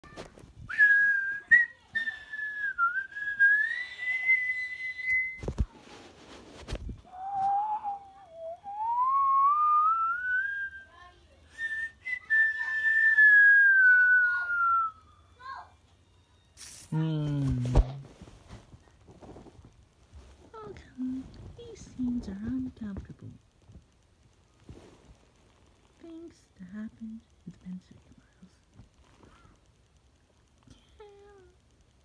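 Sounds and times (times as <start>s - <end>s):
person whistling sliding notes: 0.7s - 5.6s, 7.1s - 10.8s.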